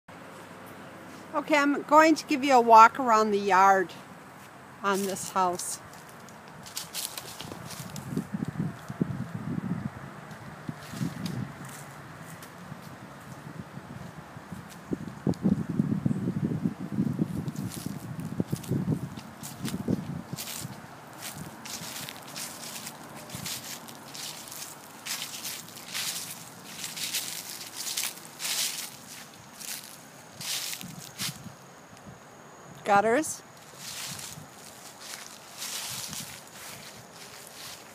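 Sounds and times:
footsteps crunching dry leaves: 4.3 - 8.8, 10.8 - 13.3, 17.3 - 31.5, 33.5 - 37.9.

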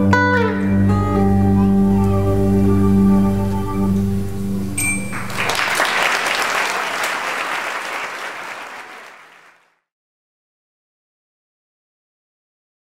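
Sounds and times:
audience applauding: 4.6 - 9.6.

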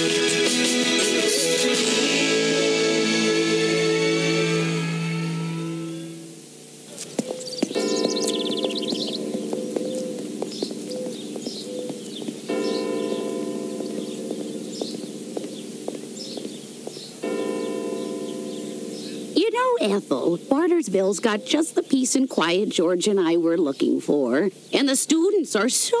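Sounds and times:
theme music: 0.0 - 6.3
church bell ringing: 7.7 - 16.6, 17.2 - 19.4.

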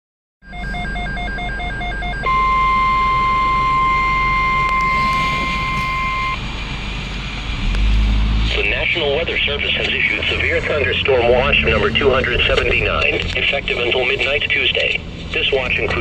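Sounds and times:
rapid beeps: 0.5 - 6.4
steady warning tone: 0.5 - 6.8
car low hum: 0.5 - 16.0.

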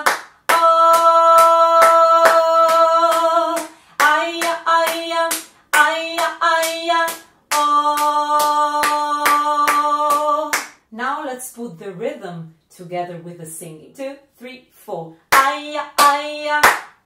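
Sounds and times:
hands clapping steady beat: 0.0 - 10.8, 15.3 - 17.0
woman singing: 0.0 - 16.8.

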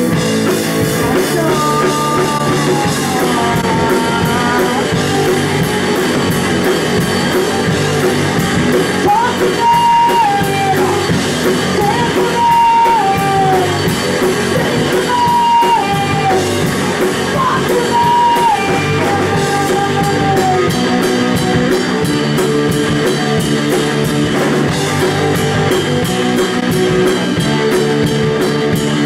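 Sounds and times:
punk rock band playing live: 0.0 - 29.0
woman singing: 1.0 - 6.4, 8.9 - 13.9, 14.5 - 16.7, 17.3 - 20.9.

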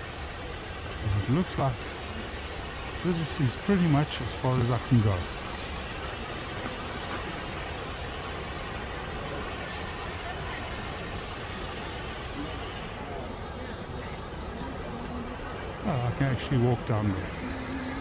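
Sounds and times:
waterfall rushing: 0.0 - 18.0.

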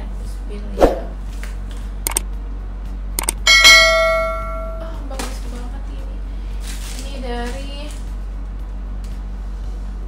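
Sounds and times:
bright bell ding: 3.5 - 5.0.

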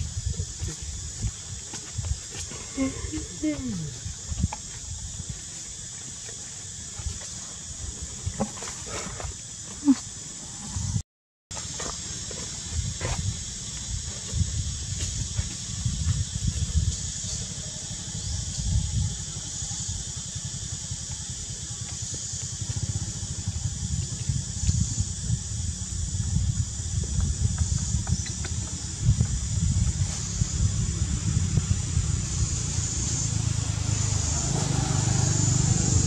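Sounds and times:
high insect drone: 0.0 - 36.0.

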